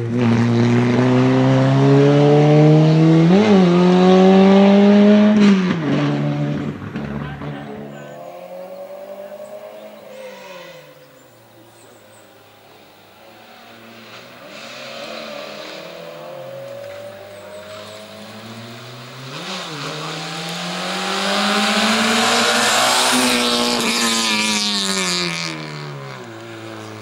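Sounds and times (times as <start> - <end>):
race car engine revving: 0.0 - 27.0.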